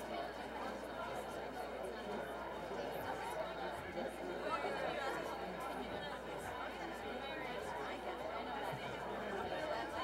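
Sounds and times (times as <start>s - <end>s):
murmur of audience chatter: 0.0s - 10.0s.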